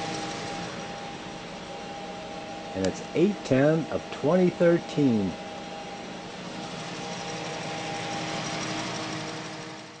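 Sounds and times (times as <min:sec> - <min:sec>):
cooling fans whirring hum: 0:00.0 - 0:10.0.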